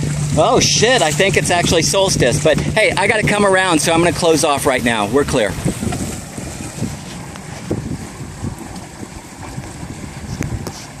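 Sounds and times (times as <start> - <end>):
wind noise on microphone: 0.0 - 11.0.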